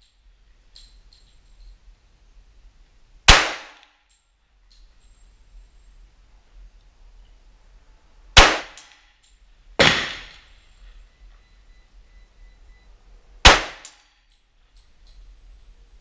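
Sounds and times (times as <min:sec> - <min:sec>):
pistol shots: 0:03.3 - 0:03.9, 0:08.4 - 0:09.0, 0:09.8 - 0:10.5, 0:13.4 - 0:14.0.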